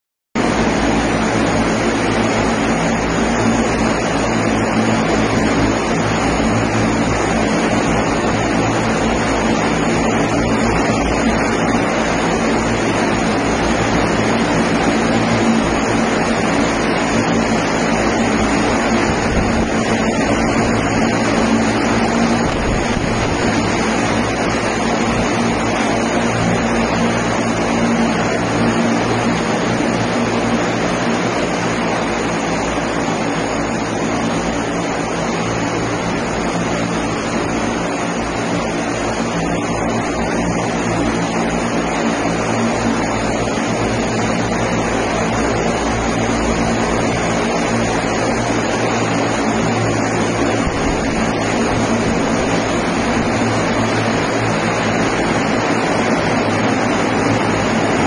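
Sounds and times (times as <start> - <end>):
low hum of layered tones: 0.4 - 58.0
propellers rushing: 0.4 - 58.0.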